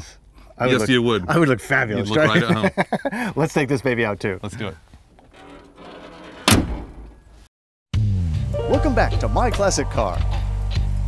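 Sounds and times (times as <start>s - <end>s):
loud slam: 6.4s - 7.1s.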